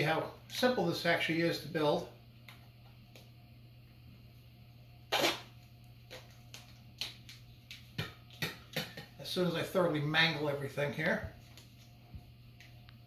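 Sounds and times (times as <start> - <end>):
low steady hum: 0.0 - 13.0
duct tape ripping: 5.1 - 6.2.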